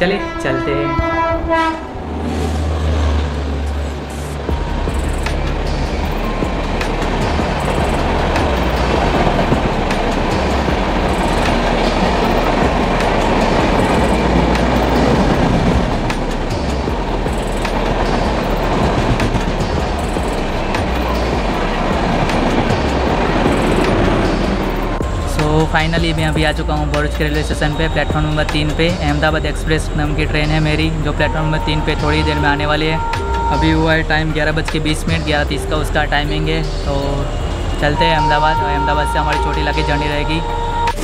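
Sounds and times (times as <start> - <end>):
locomotive deep hum: 0.0 - 41.0
train passing: 0.0 - 41.0
wheels rushing on rail: 0.0 - 41.0.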